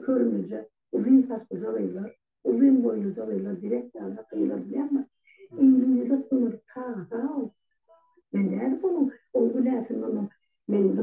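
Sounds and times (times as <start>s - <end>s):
person talking: 0.0s - 7.5s, 8.3s - 11.0s.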